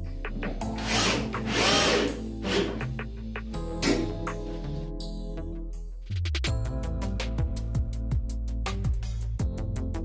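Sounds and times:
cordless drill driving screw: 0.8s - 2.9s.

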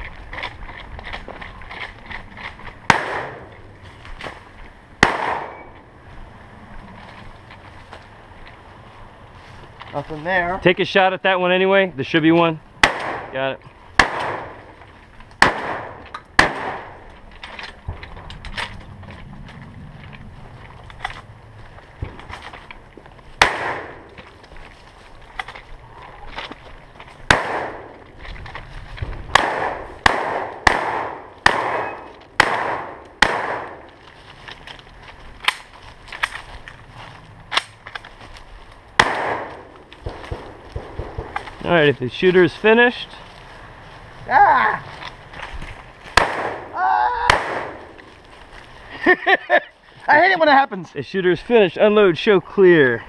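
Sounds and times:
gunshots with short echo: 2.9s - 3.4s, 5.0s - 5.7s, 15.4s - 17.0s, 23.4s - 24.0s, 27.3s - 27.9s, 29.3s - 33.8s, 39.0s - 41.4s, 46.2s - 46.7s.

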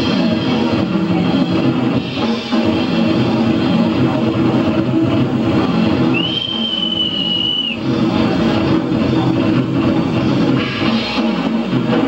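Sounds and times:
drum kit: 0.0s - 12.0s
high steady whistle: 6.0s - 8.1s.

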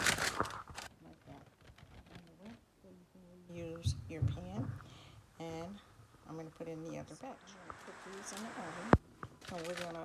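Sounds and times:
baking parchment crinkling: 0.0s - 2.6s, 7.5s - 10.0s.

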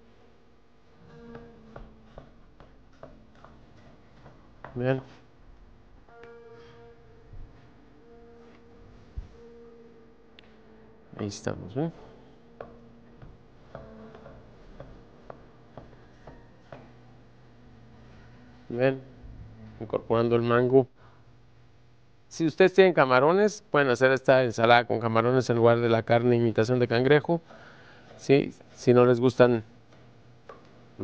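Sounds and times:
faint background music: 0.0s - 31.0s.

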